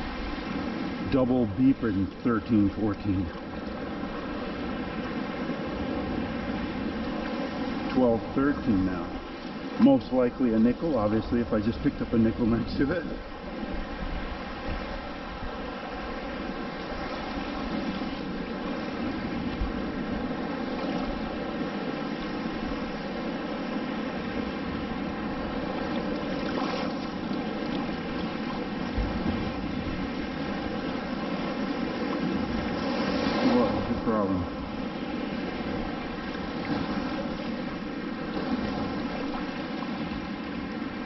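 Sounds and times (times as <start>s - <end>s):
faint steady drone: 0.0s - 41.0s.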